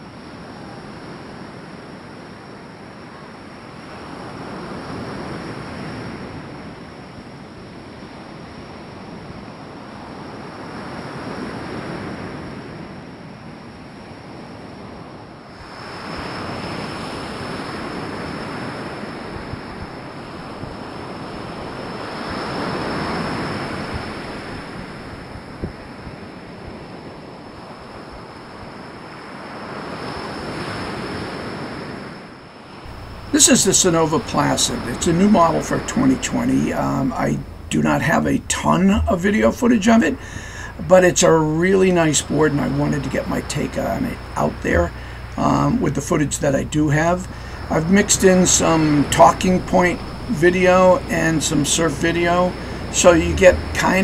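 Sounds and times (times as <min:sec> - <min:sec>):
waves breaking ashore: 0:00.0 - 0:54.0.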